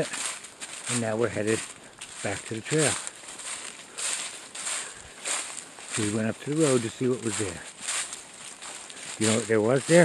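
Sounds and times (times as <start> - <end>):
footsteps crunching dry leaves: 0.0 - 10.0.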